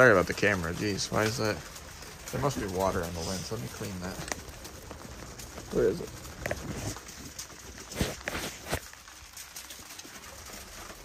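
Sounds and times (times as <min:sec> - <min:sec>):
faint hiss of rain: 0:00.0 - 0:11.0.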